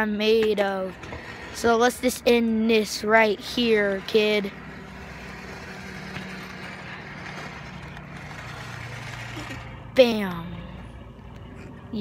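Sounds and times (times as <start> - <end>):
steady low hum: 0.0 - 12.0
toy car motor whirring: 0.2 - 10.2.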